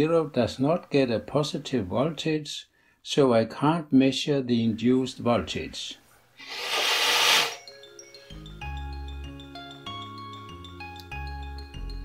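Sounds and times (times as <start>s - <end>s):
person blowing air: 6.4s - 7.6s
chiming mallet percussion music: 7.6s - 12.0s.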